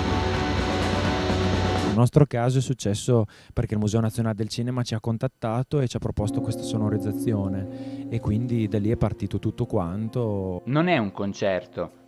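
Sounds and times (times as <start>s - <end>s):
post-rock music with sustained chords: 0.0s - 2.0s, 6.3s - 11.0s.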